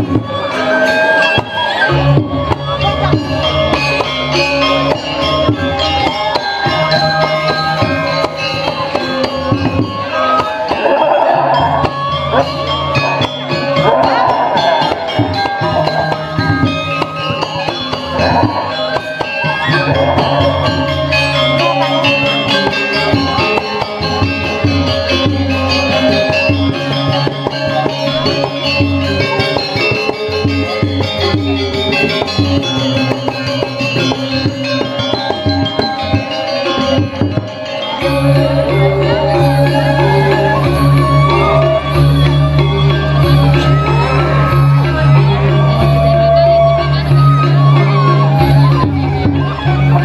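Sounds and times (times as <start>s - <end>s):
metallic tuned percussion melodies: 0.0s - 50.0s
metallophones ringing: 0.0s - 50.0s.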